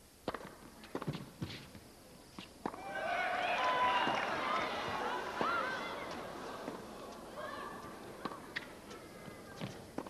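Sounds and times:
spectators' voices: 2.8 - 10.0.

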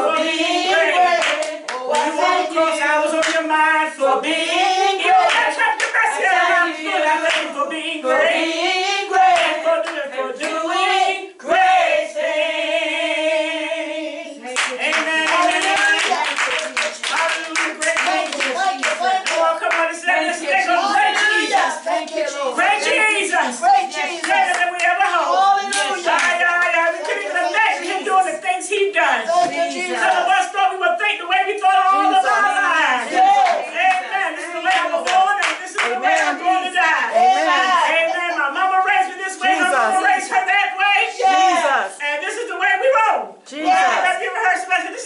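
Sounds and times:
worship singing: 0.0 - 45.0
hand clapping: 1.2 - 2.1, 3.2 - 3.5, 7.2 - 7.5, 14.5 - 19.9, 24.1 - 28.0, 33.2 - 37.0
raised voices calling out: 14.8 - 30.7, 31.5 - 42.0, 43.0 - 45.0.

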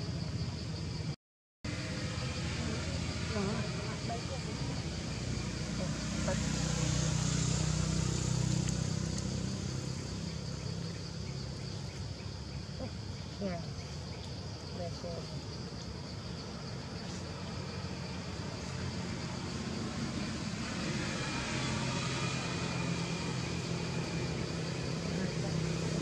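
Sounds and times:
low motor-like rumble: 1.7 - 26.0.

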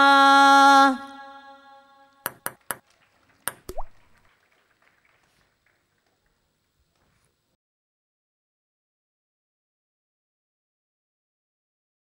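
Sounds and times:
long held sung note: 0.0 - 2.2.

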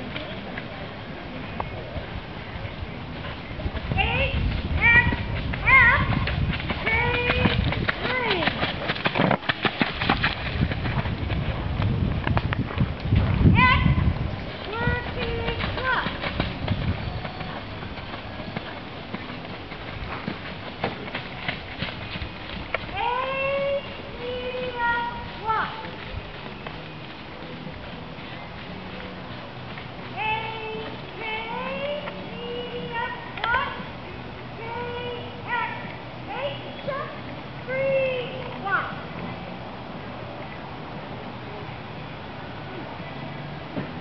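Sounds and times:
high voices talking: 0.0 - 8.8, 13.4 - 41.4.

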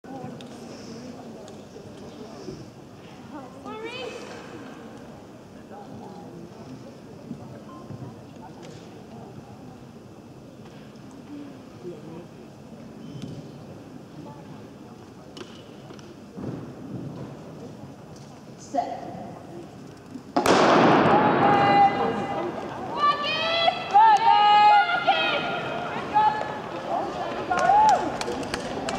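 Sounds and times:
crowd chatter echoing indoors: 0.0 - 28.9
spectators yelling encouragement: 21.2 - 28.3.

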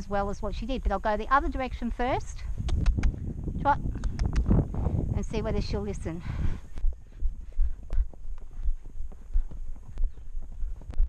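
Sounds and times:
wind rumbling on microphone: 0.0 - 11.0
quick sharp clicks: 2.6 - 3.2, 4.0 - 4.5.

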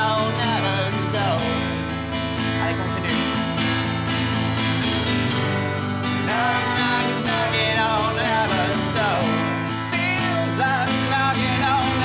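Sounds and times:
acoustic guitar strumming: 0.0 - 12.0
wordless sung melody: 0.0 - 12.0.

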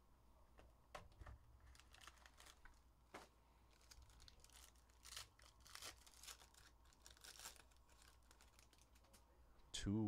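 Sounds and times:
wrapper tearing and crinkling: 1.6 - 2.8, 3.7 - 9.2.

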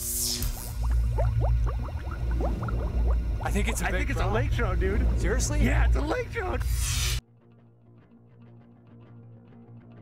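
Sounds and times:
water bubbling and gurgling: 0.4 - 6.8
steady low rumble: 0.7 - 7.0.

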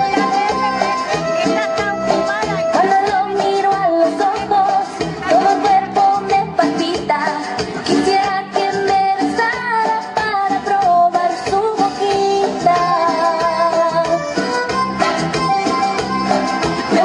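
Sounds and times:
woman singing into microphone: 0.0 - 15.4, 16.6 - 17.0
live band with drums and horns: 0.0 - 17.0.

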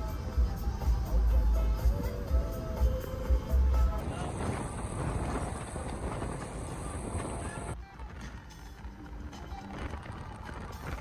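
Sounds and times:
road and tyre noise: 0.0 - 11.0.

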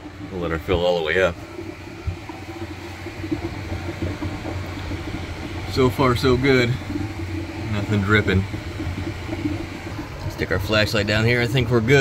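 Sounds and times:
hose water rushing into tank: 0.0 - 12.0
low hum: 0.0 - 12.0.

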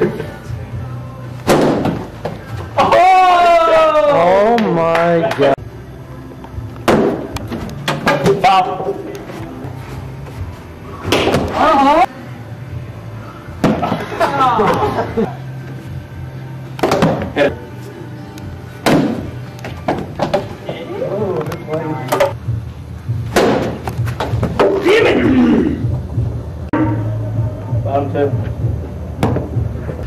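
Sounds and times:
background music: 0.0 - 30.0
ball thump: 1.5 - 2.4.

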